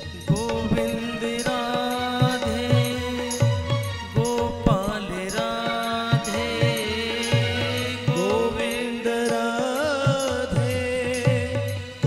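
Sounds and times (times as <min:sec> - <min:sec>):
man singing: 0:00.0 - 0:12.0
percussion beat: 0:00.0 - 0:12.0.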